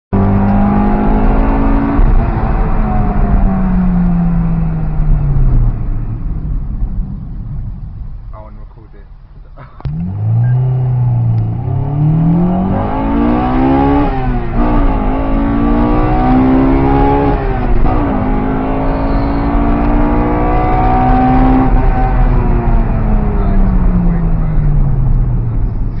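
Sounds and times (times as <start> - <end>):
car engine accelerating hard: 0.2 - 8.5, 9.6 - 26.0.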